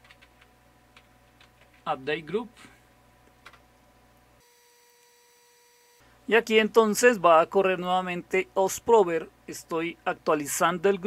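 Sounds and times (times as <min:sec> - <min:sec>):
computer keyboard keystroke: 0:00.0 - 0:01.9, 0:03.4 - 0:03.6.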